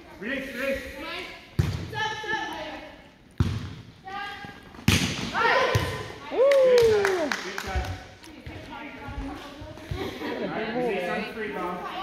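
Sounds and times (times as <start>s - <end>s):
balls bouncing on gym floor: 1.5s - 10.2s.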